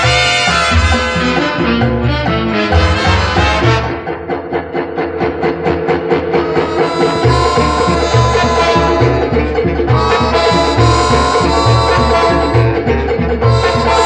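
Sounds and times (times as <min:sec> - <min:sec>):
latin big band playing: 0:00.0 - 0:14.0
quick even percussive strokes: 0:00.0 - 0:14.0.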